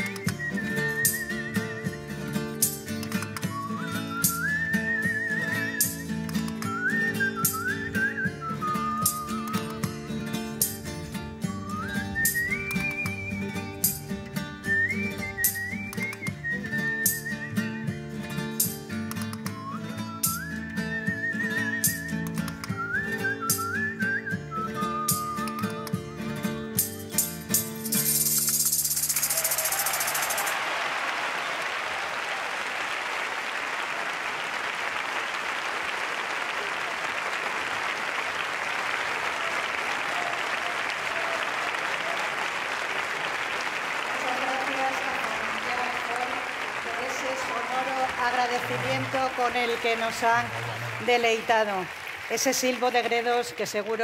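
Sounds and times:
rhythmic clicking beat: 0.0 - 0.4, 2.5 - 3.5, 5.8 - 6.8, 18.6 - 19.6, 21.8 - 23.8, 26.8 - 30.4
man whistling folk tune: 0.0 - 26.6, 27.2 - 30.5
strummed guitars: 0.0 - 29.2
audience applause: 29.0 - 54.0.

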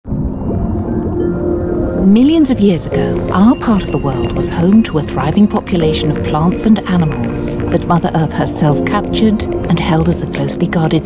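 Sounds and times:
deep rumble: 0.0 - 11.0
low sustained music tones: 0.1 - 11.0.

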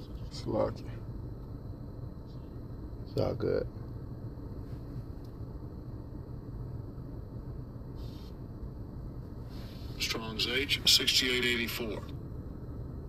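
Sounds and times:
low background hum: 0.0 - 13.0
faint hiss: 7.8 - 8.6, 9.2 - 12.1.

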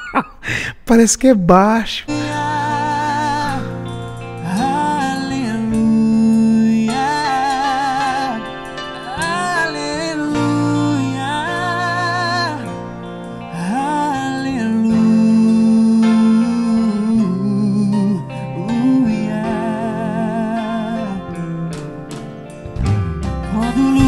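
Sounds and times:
man singing with vibrato: 0.5 - 22.4, 23.4 - 24.0
band with guitar and bass: 2.1 - 24.0.

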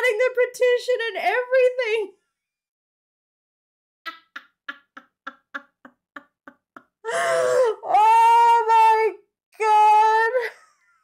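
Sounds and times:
woman laughing hard: 4.1 - 7.7.

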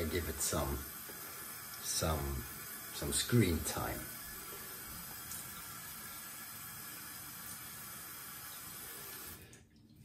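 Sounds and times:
tap water running: 0.0 - 10.0.

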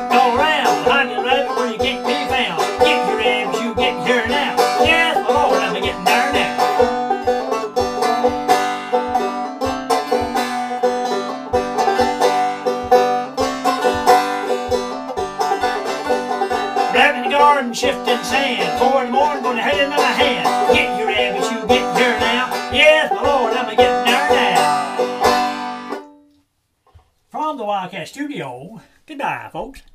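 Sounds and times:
low thumping beat: 0.0 - 26.0
banjo plucking: 0.0 - 26.3.

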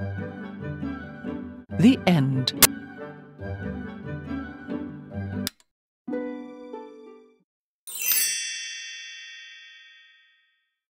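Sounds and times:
sparkly chime: 7.9 - 10.5.

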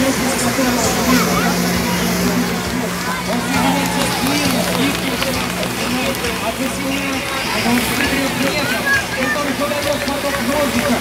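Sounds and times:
voices chattering: 0.0 - 11.0
water jets hissing: 0.0 - 11.0
watercraft engine hum: 0.0 - 11.0.

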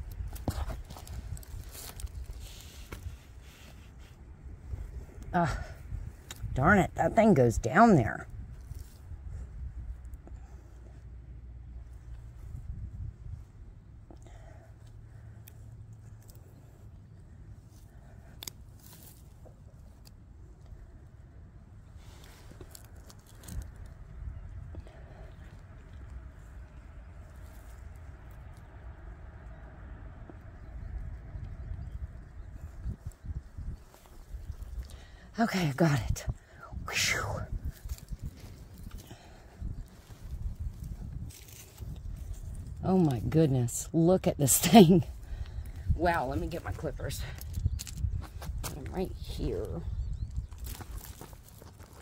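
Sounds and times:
small clicks and crackles: 0.0 - 4.1, 14.1 - 21.0, 22.1 - 28.7, 37.7 - 42.8, 47.1 - 48.9, 49.7 - 52.0
hands digging in soil: 0.0 - 9.1
steady low rumble: 0.0 - 52.0.

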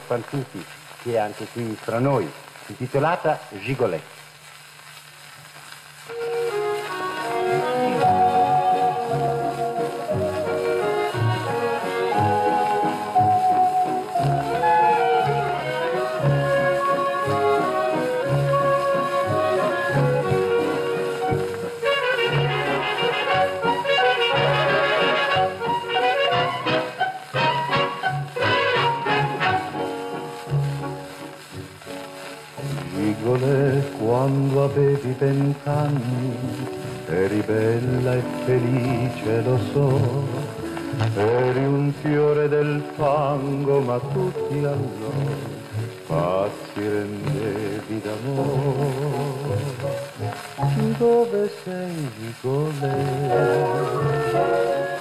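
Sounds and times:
orchestra with brass playing: 6.1 - 30.8, 52.8 - 55.0.

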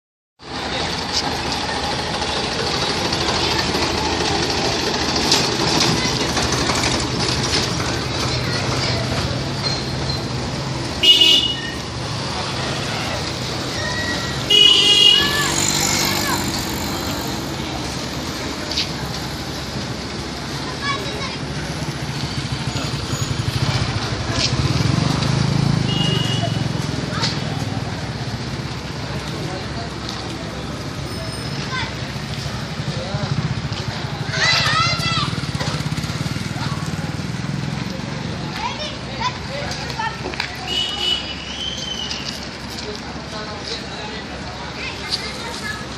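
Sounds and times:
two-wheeler engines humming: 0.4 - 45.9
children's voices: 1.0 - 9.6, 11.8 - 25.8, 29.3 - 45.9
vehicle horn honking: 11.0 - 11.8, 14.5 - 15.5, 25.9 - 26.7
child shouting: 12.8 - 16.5, 34.3 - 35.4.

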